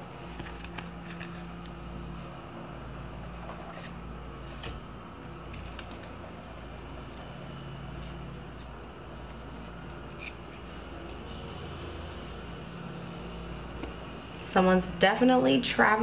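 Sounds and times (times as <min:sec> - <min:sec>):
low room hum: 0:00.0 - 0:16.0.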